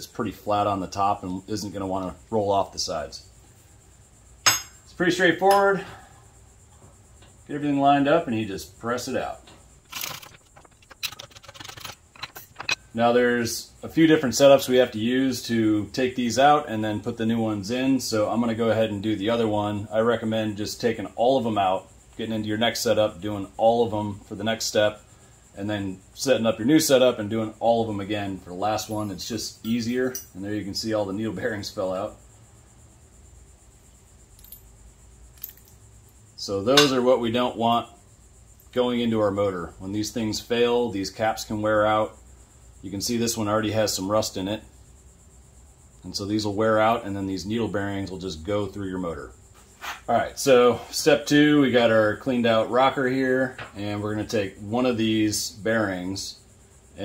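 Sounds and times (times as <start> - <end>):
low steady hum: 0.0 - 57.0
small metallic clicks and rattles: 9.8 - 12.8, 35.4 - 35.8
metal scrape: 49.6 - 50.1.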